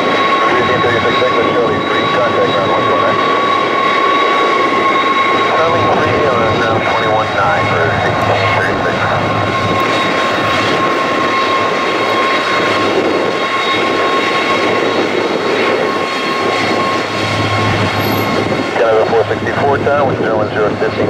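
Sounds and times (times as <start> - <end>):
jet engines rumbling and whining: 0.0 - 21.0.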